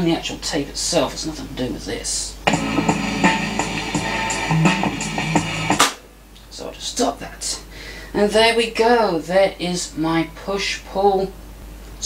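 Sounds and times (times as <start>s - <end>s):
guitar music with drums: 2.5s - 6.1s.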